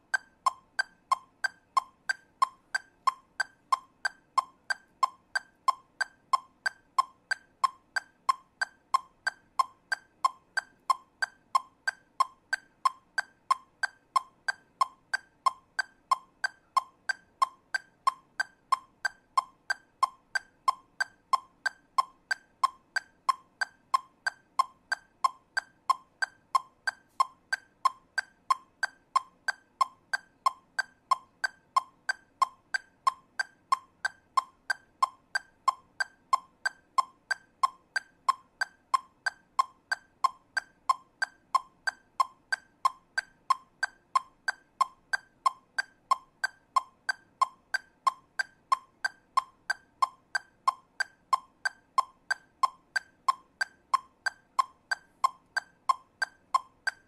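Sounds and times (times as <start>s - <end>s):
metronome clicking: 0.0s - 57.0s.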